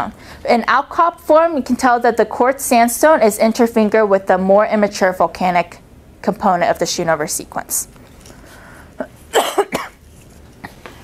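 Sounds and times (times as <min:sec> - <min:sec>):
person coughing: 0:09.0 - 0:10.0.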